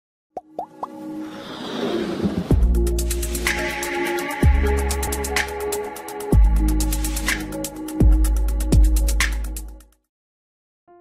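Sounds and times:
whoosh: 1.2 - 3.6.

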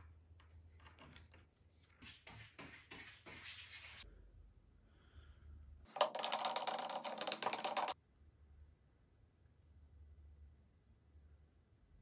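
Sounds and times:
wooden stick scraping plastic jug: 5.9 - 7.9.

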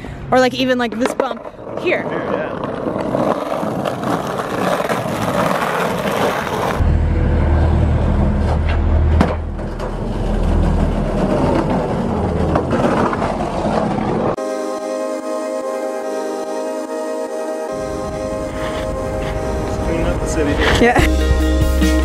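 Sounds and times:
skateboard wheels rolling on asphalt: 0.5 - 14.4, 17.7 - 21.5
skateboard clack: 0.8 - 6.8, 8.4 - 14.4
music: 20.9 - 22.0.

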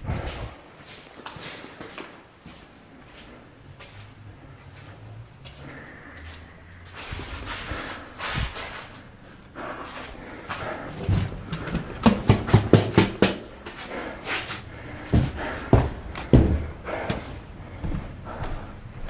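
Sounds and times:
footsteps on concrete stairs: 0.0 - 19.0.

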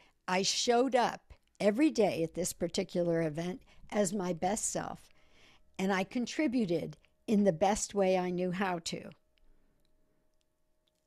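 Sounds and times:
person speaking: 0.3 - 5.0.

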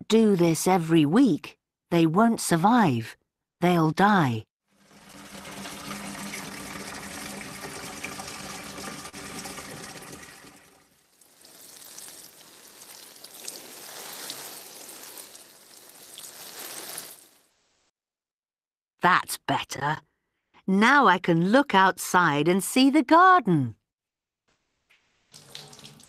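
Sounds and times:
water pouring and trickling: 4.7 - 17.4, 25.0 - 26.0.

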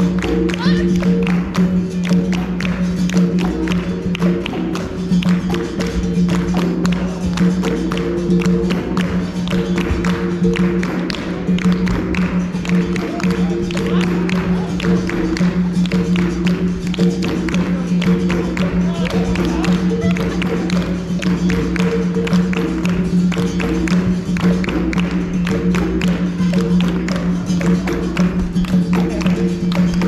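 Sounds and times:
berimbau alternating notes: 0.0 - 30.0
hand clapping: 0.0 - 30.0
hand drum: 0.0 - 30.0.

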